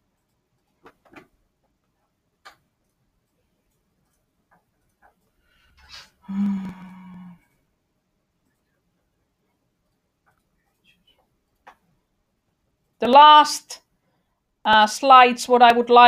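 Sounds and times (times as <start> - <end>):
computer mouse clicks: 0.1 - 5.4, 9.8 - 12.0
person humming: 6.2 - 7.4.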